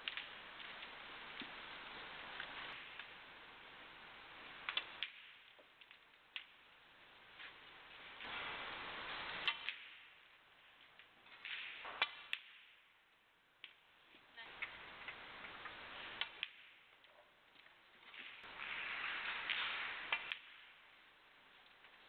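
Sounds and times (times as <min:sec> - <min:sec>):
soft hall hiss: 0:00.0 - 0:22.0.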